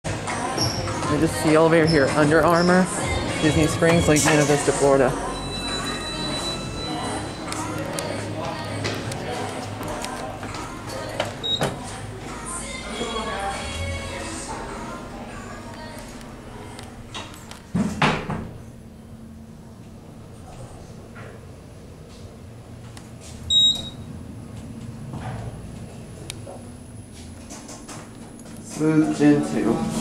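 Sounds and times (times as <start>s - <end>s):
shop background music: 0.0s - 18.0s, 28.6s - 30.0s
steady low hum: 0.1s - 30.0s
elevator doors opening: 0.5s - 12.1s, 23.1s - 30.0s
people talking: 1.1s - 5.2s, 28.7s - 30.0s
elevator beep: 5.1s - 7.8s, 11.4s - 11.8s, 23.5s - 24.2s.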